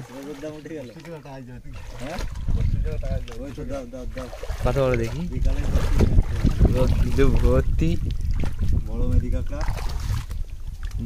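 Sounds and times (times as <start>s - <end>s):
man talking: 0.0s - 6.0s
wind rumble on microphone: 1.6s - 11.0s.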